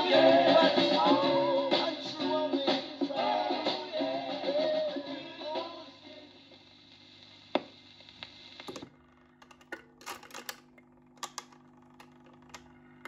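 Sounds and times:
stylus hiss in run-out groove: 0:00.0 - 0:08.8
turntable motor hum: 0:06.3 - 0:13.0
record changer mechanism clunking: 0:08.6 - 0:12.7.

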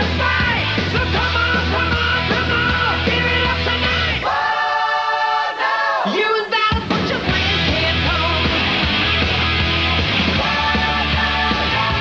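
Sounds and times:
hard rock song: 0:00.0 - 0:04.4, 0:06.0 - 0:12.0.

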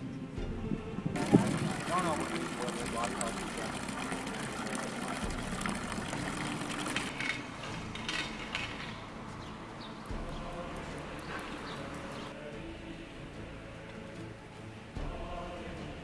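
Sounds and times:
water pouring from fountain spout: 0:01.1 - 0:07.4, 0:10.0 - 0:12.3
voices in background: 0:01.2 - 0:07.1
faint clicks: 0:10.2 - 0:12.3.

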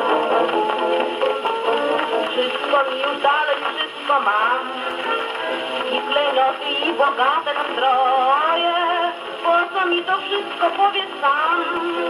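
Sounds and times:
record clicks: 0:00.0 - 0:04.2
record surface hiss: 0:00.0 - 0:12.0
woman singing with dance orchestra: 0:02.2 - 0:04.9, 0:05.8 - 0:12.0.

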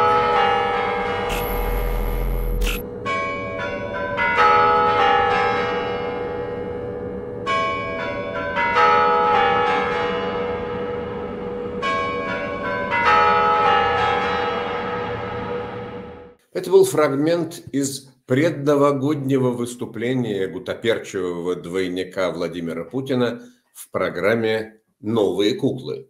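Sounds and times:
clock bells chiming: 0:11.8 - 0:15.3.

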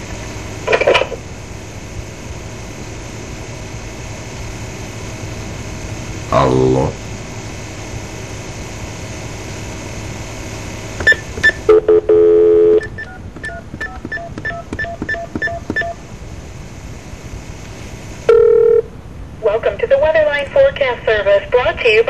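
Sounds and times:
telephone line hiss: 0:09.9 - 0:18.9
steady telephone tone: 0:11.0 - 0:16.0, 0:18.2 - 0:18.9
touch-tone key beeps: 0:12.6 - 0:16.0.

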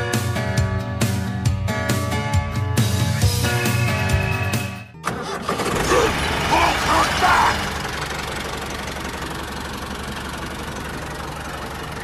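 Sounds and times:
background music: 0:00.0 - 0:05.2
engine low rumble: 0:05.1 - 0:12.0.

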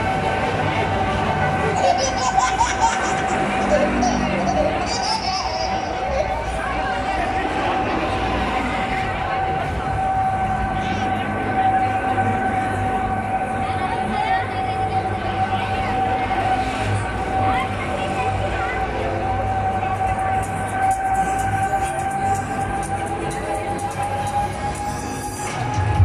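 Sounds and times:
fairground ride high whine: 0:00.0 - 0:26.0
murmur of voices: 0:00.0 - 0:26.0.

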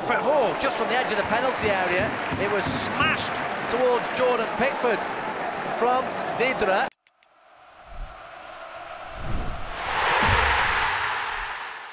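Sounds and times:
swell of noise: 0:07.6 - 0:11.9.

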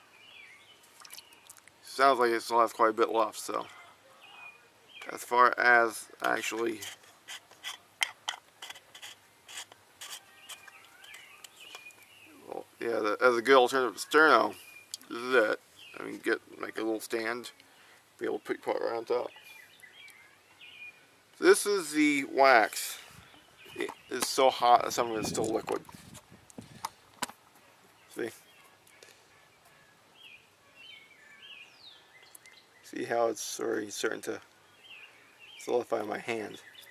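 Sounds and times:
metal can scraping: 0:06.4 - 0:11.2.

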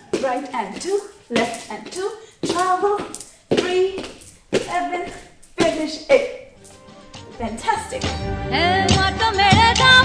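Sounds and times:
bare feet tapping wooden floor: 0:00.0 - 0:07.3
woman counting dance steps: 0:00.0 - 0:08.2.

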